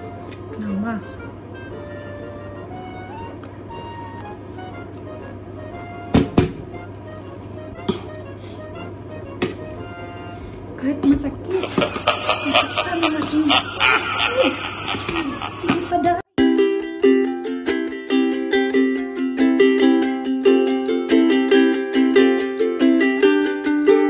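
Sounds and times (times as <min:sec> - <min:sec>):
soft background music: 0:00.0 - 0:14.3.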